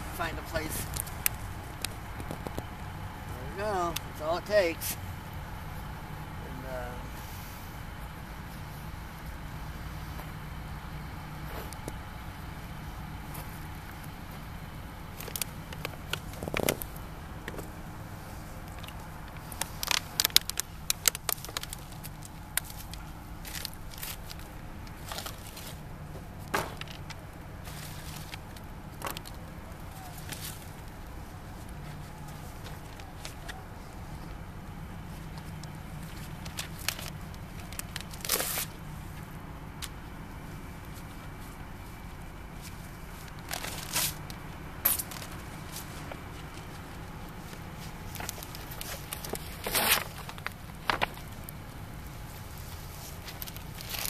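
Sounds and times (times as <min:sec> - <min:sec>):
fire crackling and popping: 0:00.0 - 0:06.4, 0:07.2 - 0:41.9, 0:43.2 - 0:54.0
distant road traffic rumble: 0:00.0 - 0:54.0.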